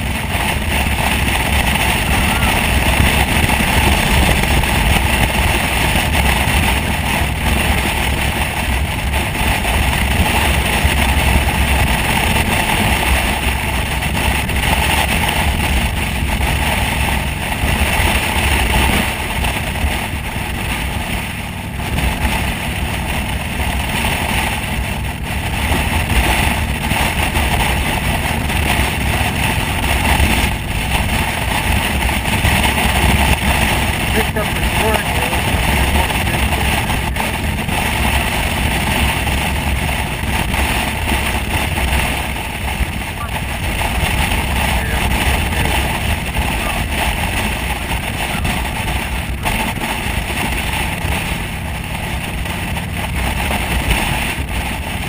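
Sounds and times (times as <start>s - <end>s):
motorcycle engine cruising: 0.0s - 55.0s
road noise: 0.0s - 55.0s
wind rush on microphone: 0.0s - 55.0s.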